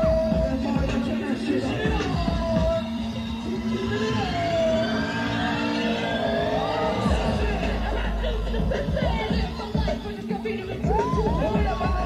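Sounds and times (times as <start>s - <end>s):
steady low drone: 2.3s - 11.8s
wavering siren-like tones: 2.9s - 10.2s.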